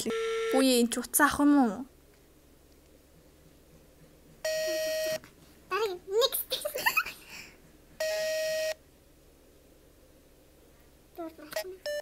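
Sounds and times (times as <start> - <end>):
buzzy telephone call tone beep: 0.1 - 0.7, 4.4 - 5.2, 8.0 - 8.8.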